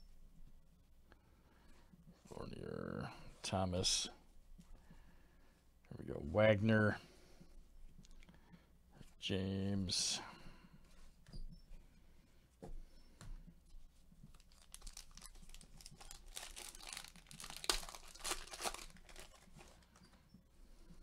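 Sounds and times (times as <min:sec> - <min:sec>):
foil wrapper tearing and crinkling: 0:14.3 - 0:20.0.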